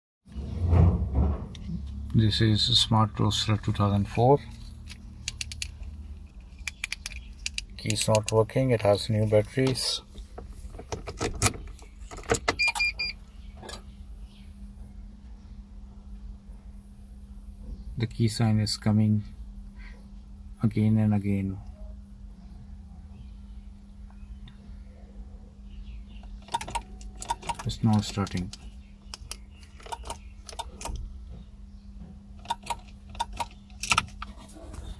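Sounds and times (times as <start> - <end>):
low electrical hum: 0.3 - 34.9
short electronic beeps: 12.6 - 13.2
car key clicking in ignition: 26.4 - 31.0.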